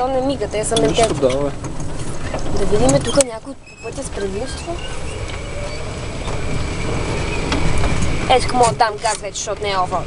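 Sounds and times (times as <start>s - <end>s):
tyres on paved path: 0.0s - 10.0s
wind buffeting: 0.0s - 10.0s.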